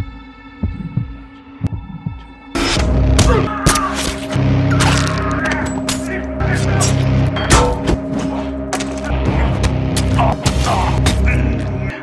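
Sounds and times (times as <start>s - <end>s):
low dull thuds: 0.0s - 2.2s.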